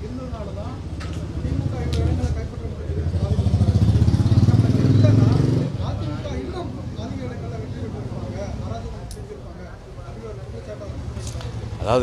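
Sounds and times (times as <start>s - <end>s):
voices: 0.0s - 12.0s.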